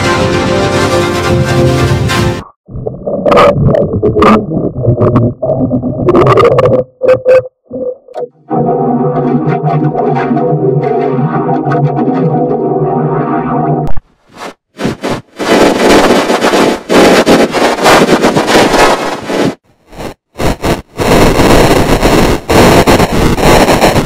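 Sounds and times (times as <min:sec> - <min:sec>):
harsh distorted noise: 0:02.2 - 0:24.0
held synthesizer chord: 0:08.2 - 0:13.9.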